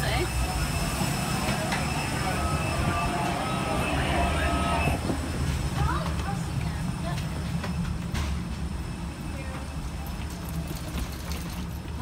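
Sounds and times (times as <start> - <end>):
aircraft low rumble: 0.0 - 12.0
faint passengers' voices: 0.0 - 12.0.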